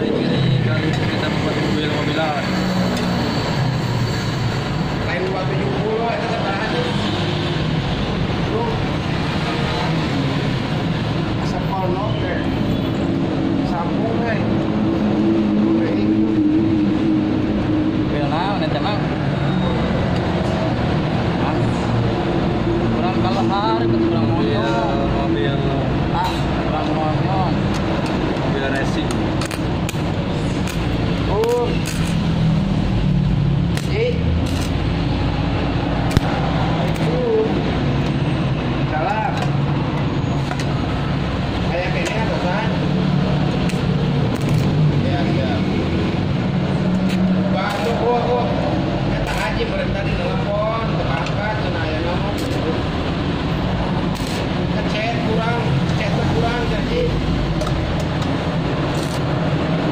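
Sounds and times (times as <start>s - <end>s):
welding arc crackles: 29.3s - 32.4s, 33.7s - 35.0s, 43.6s - 44.9s, 52.3s - 52.8s.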